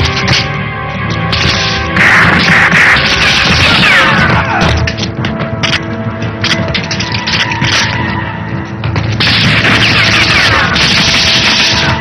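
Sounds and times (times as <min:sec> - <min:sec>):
action film score: 0:00.0 - 0:12.0.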